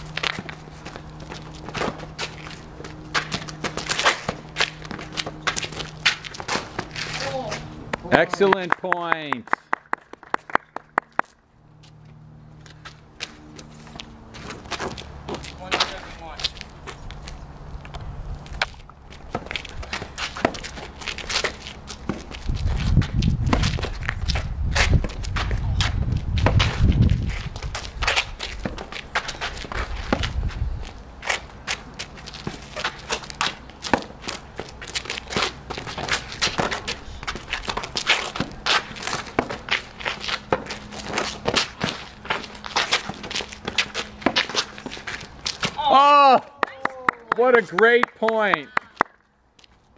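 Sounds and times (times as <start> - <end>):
sneakers scuffing on pavement: 0.0 - 8.6, 11.0 - 45.8
racket hitting tennis ball: 3.1 - 9.0, 18.6 - 30.4, 31.2 - 45.8
ball bouncing: 32.4 - 45.8.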